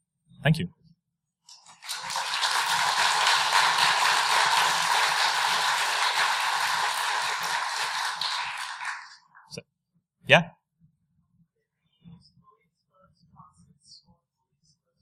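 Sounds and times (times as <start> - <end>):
audience applauding: 1.5 - 9.3.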